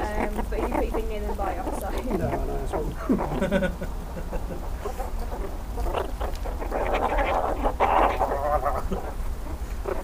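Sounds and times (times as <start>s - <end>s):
meerkats chattering: 0.0s - 10.0s.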